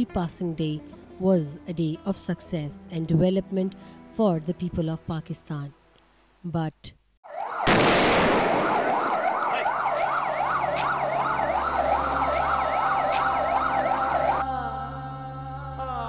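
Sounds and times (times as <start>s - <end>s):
emergency siren wailing: 7.2s - 15.4s
low musical drone: 10.6s - 16.0s.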